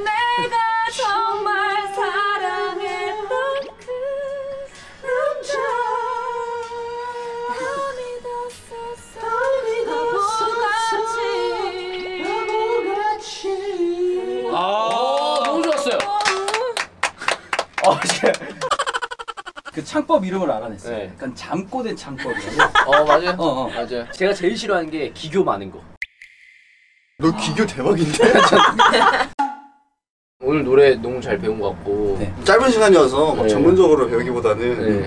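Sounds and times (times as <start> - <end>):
hands clapping: 14.9 - 19.4.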